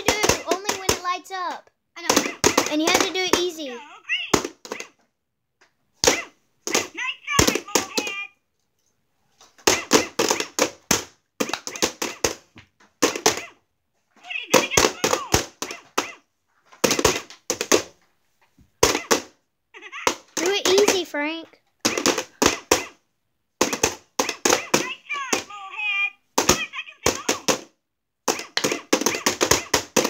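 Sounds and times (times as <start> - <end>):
children's voices: 0.0 - 4.3, 19.8 - 21.6.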